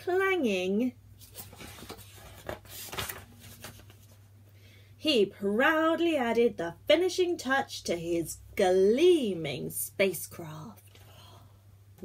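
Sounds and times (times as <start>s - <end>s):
paper page turning: 1.2s - 4.2s.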